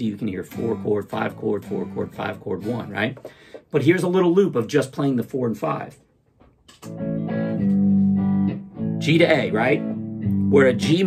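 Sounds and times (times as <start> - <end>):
electric guitar strumming chord: 6.9 - 11.0.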